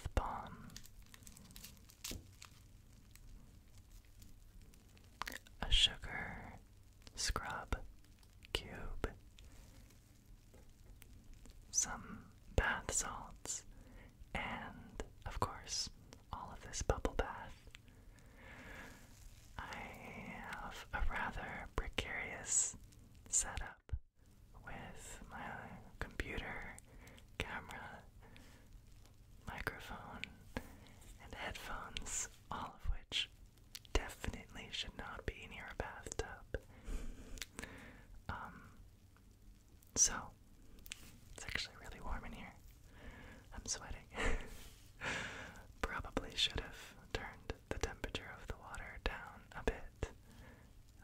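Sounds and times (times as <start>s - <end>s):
man whispering: 0.0s - 0.9s, 5.2s - 9.3s, 11.7s - 13.7s, 14.3s - 17.8s, 18.8s - 24.0s, 24.6s - 28.2s, 29.4s - 33.3s, 33.9s - 36.7s, 38.3s - 38.8s, 40.0s - 40.4s, 41.0s - 42.6s, 43.4s - 44.6s, 45.7s - 50.2s.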